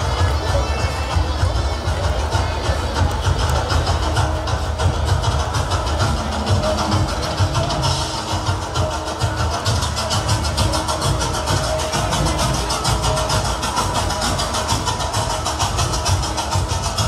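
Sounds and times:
dense crowd noise: 0:00.0 - 0:17.0
loud fast drumming: 0:00.0 - 0:17.0.

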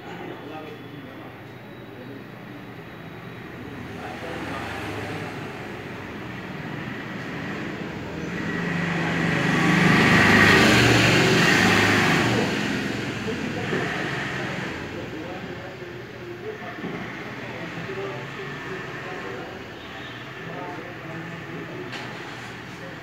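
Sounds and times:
vehicle passing: 0:03.7 - 0:15.5.

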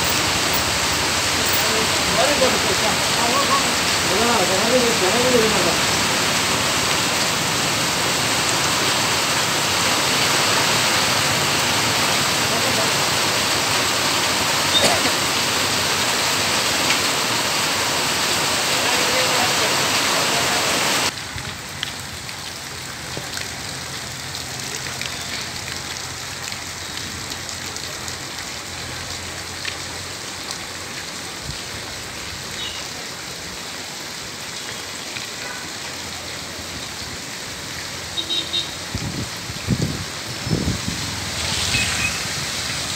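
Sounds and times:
heavy rain on a road: 0:00.0 - 0:42.9.

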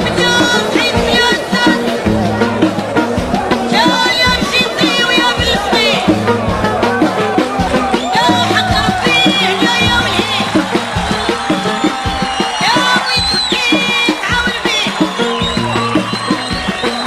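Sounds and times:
fast drum beat: 0:00.0 - 0:17.0.

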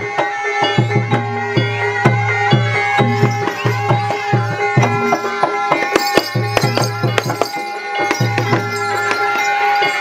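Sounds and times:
sharp percussion strikes: 0:00.0 - 0:10.0
ringing metallic tones: 0:00.5 - 0:10.0
hand drums quick beat: 0:02.0 - 0:09.4.

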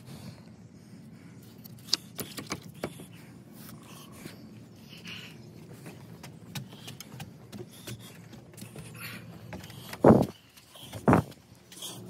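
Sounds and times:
footsteps on wooden stairs: 0:05.8 - 0:11.5.

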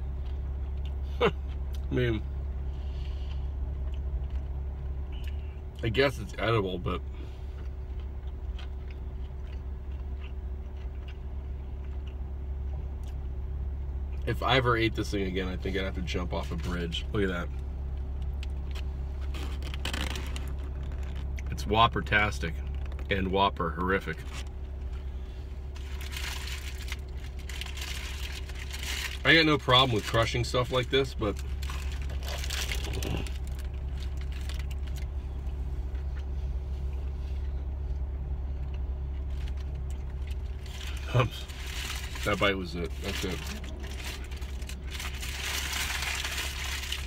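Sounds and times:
man chewing food: 0:00.0 - 0:01.9, 0:02.7 - 0:05.6, 0:07.3 - 0:13.4, 0:31.5 - 0:40.7
low car cabin hum: 0:00.0 - 0:47.0
paper wrapper crinkling: 0:19.3 - 0:21.3, 0:25.8 - 0:35.1, 0:39.3 - 0:47.0.

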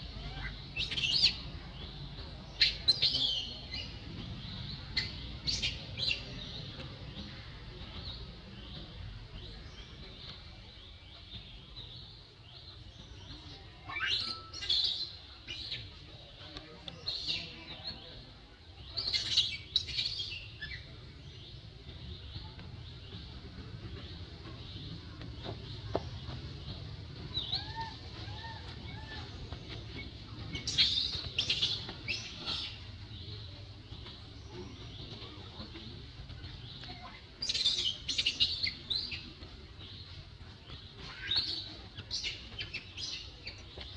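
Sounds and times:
small birds chirping: 0:00.0 - 0:43.9.

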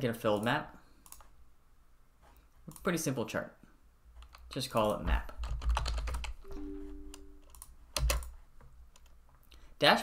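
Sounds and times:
computer keyboard keystrokes: 0:04.2 - 0:06.4, 0:07.1 - 0:09.2.

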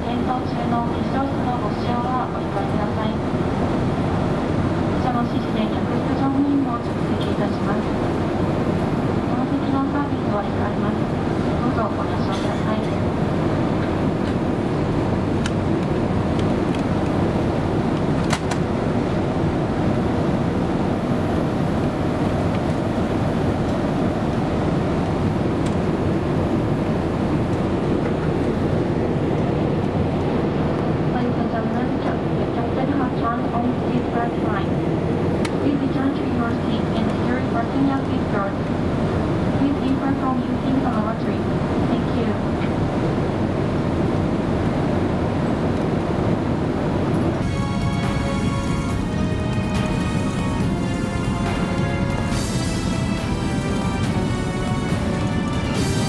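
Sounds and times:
airliner cabin engine rush: 0:00.0 - 0:56.0.

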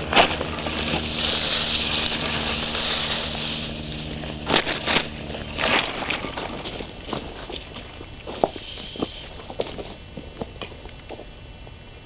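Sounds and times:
footsteps on loose ballast: 0:00.0 - 0:11.3.

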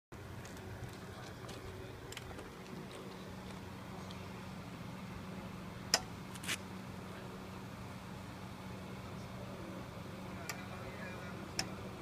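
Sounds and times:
low background hum: 0:00.2 - 0:12.0.

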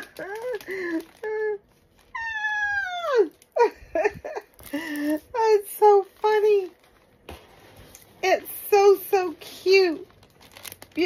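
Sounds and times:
woman laughing: 0:00.0 - 0:01.6, 0:02.7 - 0:05.2.

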